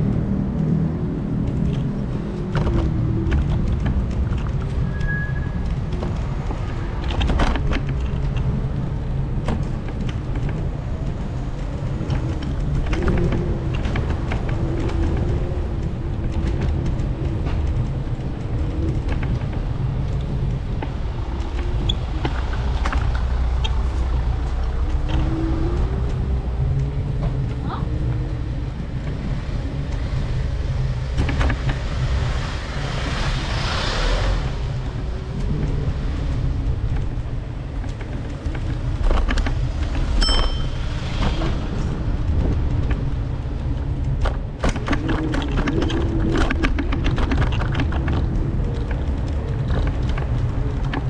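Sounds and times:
car engines running: 0.0s - 51.0s
vehicle passing: 17.0s - 44.0s
short high tone: 40.2s - 40.8s.

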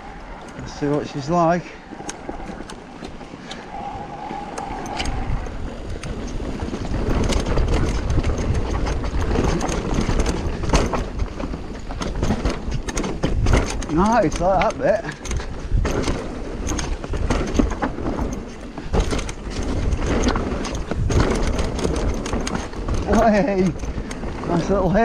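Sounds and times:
bike tyres rolling over dirt: 0.0s - 25.0s
chain and frame rattling: 0.0s - 25.0s
wind buffeting microphone: 0.0s - 25.0s.

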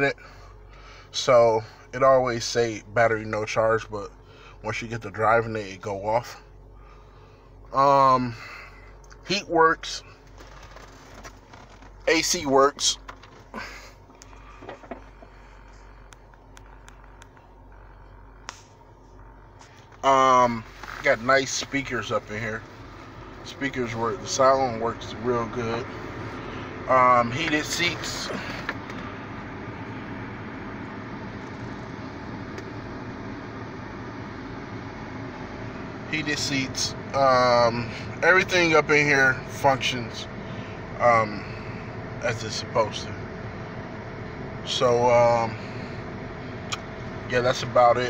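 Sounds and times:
idling car cabin hum: 0.0s - 48.0s.

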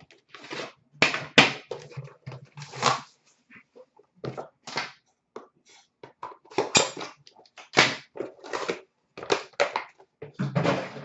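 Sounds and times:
metal tin and packaging handled: 6.0s - 11.0s.

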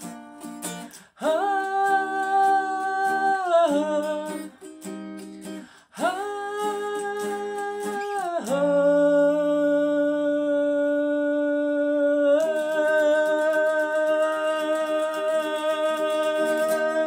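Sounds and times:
man singing: 0.0s - 4.8s, 5.4s - 17.0s
guitar strumming: 0.0s - 9.9s, 12.4s - 17.0s.

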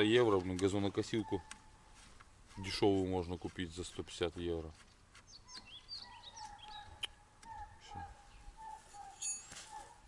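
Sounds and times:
faint birdsong chirps and calls: 0.0s - 10.0s.

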